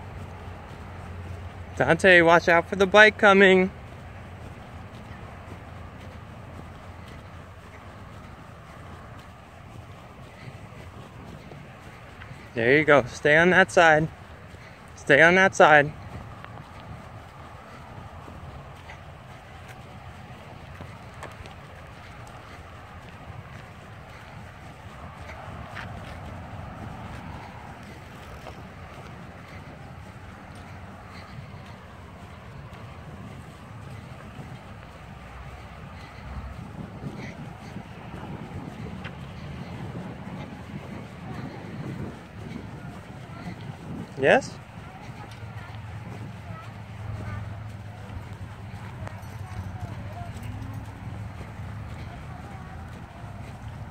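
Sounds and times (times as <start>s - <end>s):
wind rushing over microphone: 15.9s - 48.7s.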